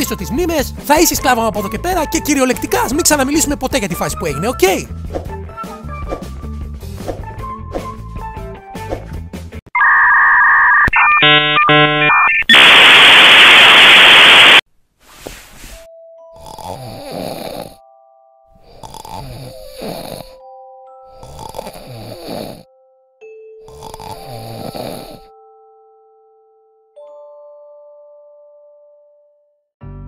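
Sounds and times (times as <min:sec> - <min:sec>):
electronic beeping tones: 0:09.8 - 0:14.6
loud static burst: 0:09.8 - 0:14.6
cartoon snores: 0:16.3 - 0:17.8, 0:18.6 - 0:20.4, 0:21.1 - 0:22.7, 0:23.7 - 0:25.3.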